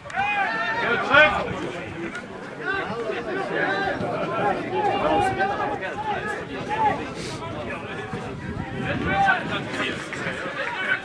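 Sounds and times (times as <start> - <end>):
men calling out and talking: 0.0 - 11.0.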